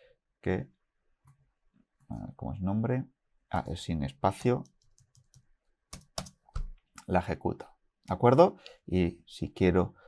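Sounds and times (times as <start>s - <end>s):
computer keyboard keystrokes: 4.6s - 6.8s.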